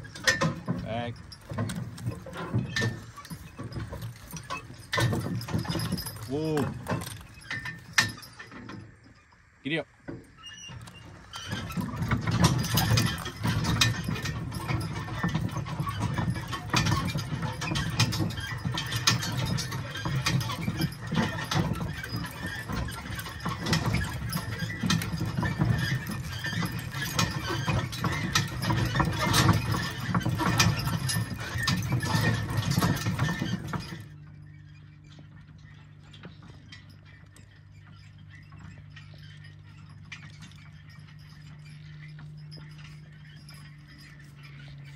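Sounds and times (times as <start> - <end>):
harness and chains rattling: 0.0 - 44.9
hooves on rough ground: 0.0 - 44.9
wheels rolling: 0.0 - 44.9.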